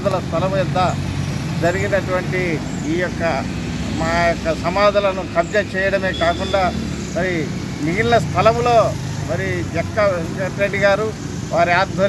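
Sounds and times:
man speaking: 0.0 - 1.0, 1.6 - 12.0.

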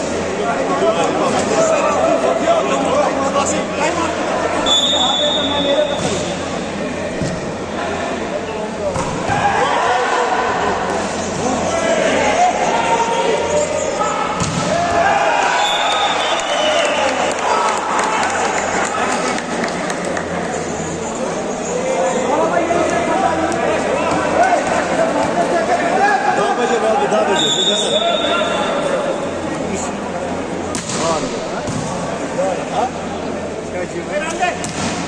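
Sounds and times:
people shouting: 9.2 - 10.8, 11.8 - 16.2
volleyball struck by hand: 34.6 - 35.0.

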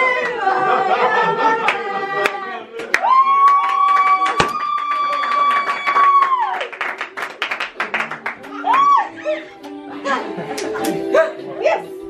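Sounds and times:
hands clapping: 1.7 - 9.0, 10.5 - 11.0.

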